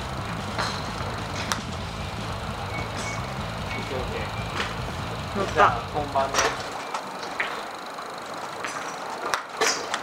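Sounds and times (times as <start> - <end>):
low rumble of traffic: 0.0 - 10.0
golf club striking ball: 0.3 - 3.8.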